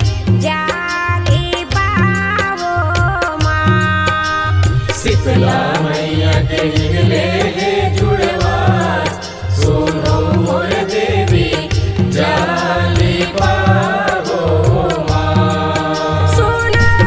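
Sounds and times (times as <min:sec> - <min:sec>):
tabla and drum-pad beats: 0:00.0 - 0:17.0
steady organ notes: 0:04.5 - 0:17.0.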